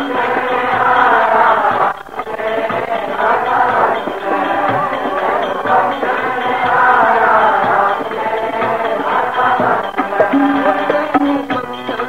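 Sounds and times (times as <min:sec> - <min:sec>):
musical accompaniment: 0:00.0 - 0:12.0
voices singing a devotional hymn: 0:00.0 - 0:12.0.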